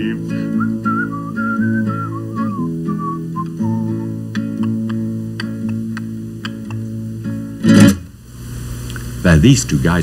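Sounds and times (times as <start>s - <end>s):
acoustic guitar strummed and plucked: 0.0s - 8.2s
man whistling a tune: 0.3s - 4.5s.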